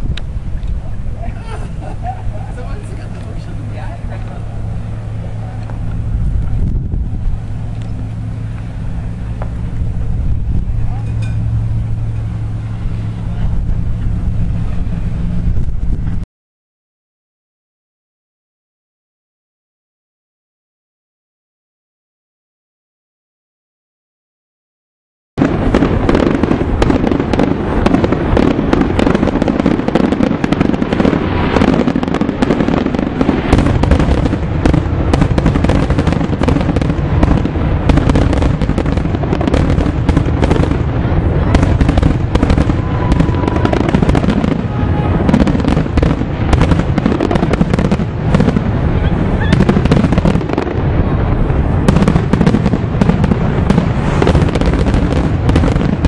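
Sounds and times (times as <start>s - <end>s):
loud crackling and popping: 0.0s - 12.4s, 25.4s - 56.0s
low rumble: 0.0s - 16.2s, 25.4s - 56.0s.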